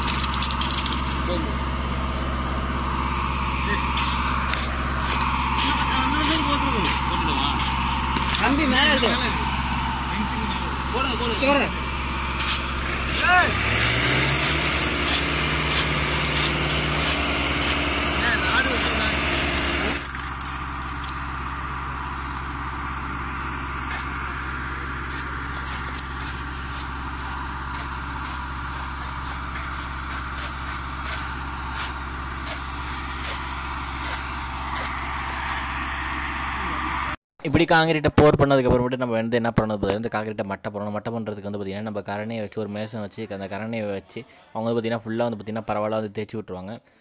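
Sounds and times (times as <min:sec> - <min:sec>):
engine running: 0:00.0 - 0:37.2.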